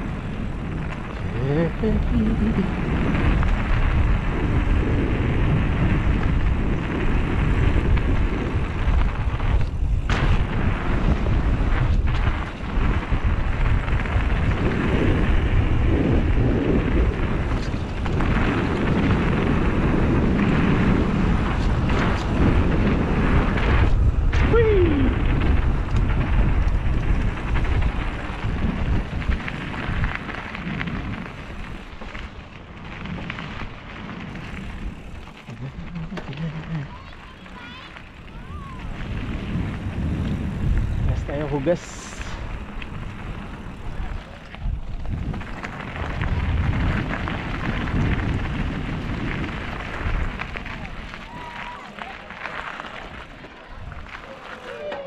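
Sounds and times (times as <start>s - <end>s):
bike tyres on dirt trail: 0.0s - 55.0s
wind rumbling on microphone: 0.0s - 55.0s.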